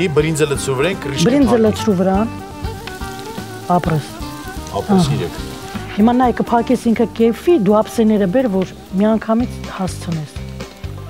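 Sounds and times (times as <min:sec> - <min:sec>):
background music with singing: 0:00.0 - 0:11.0
vegetables sizzling in frying pan: 0:00.0 - 0:11.0.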